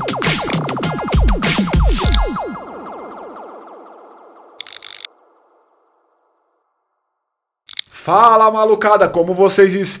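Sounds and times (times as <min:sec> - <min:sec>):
falling-pitch electronic sweeps: 0:00.0 - 0:07.0
sharp clicks: 0:02.0 - 0:02.4, 0:04.6 - 0:05.1, 0:07.7 - 0:08.0.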